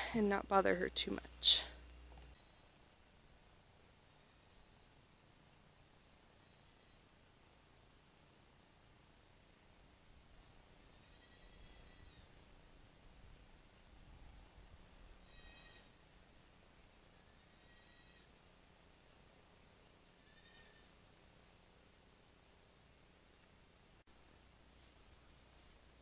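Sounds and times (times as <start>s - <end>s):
goat bleating faintly: 15.2s - 16.0s, 20.2s - 20.9s.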